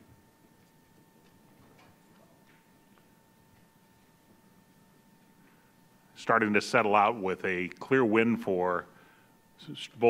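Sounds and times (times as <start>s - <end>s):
faint electrical whine: 0.0s - 10.0s.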